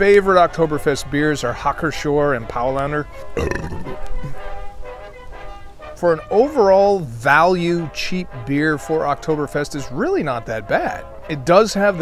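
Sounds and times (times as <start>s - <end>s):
background music: 0.0s - 12.0s
man drinking from bottle: 3.3s - 4.4s.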